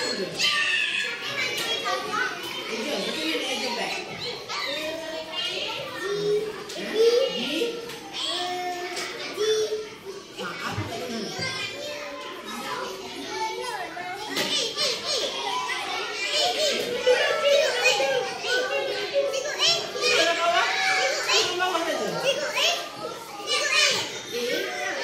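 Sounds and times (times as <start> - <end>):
children talking and calling out: 0.0 - 25.0.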